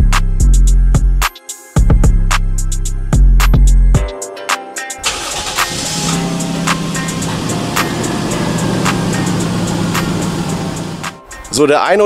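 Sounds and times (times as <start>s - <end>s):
car engine cranking and idling: 5.0s - 11.2s.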